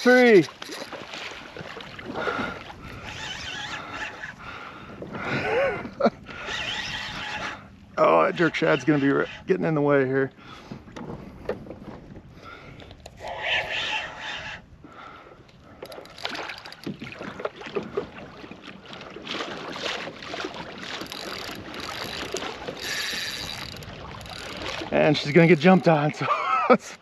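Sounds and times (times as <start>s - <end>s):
water splashing against kayak hull: 0.0s - 8.6s, 14.9s - 26.7s
wind on microphone: 0.9s - 9.6s, 10.4s - 16.2s, 20.7s - 26.2s.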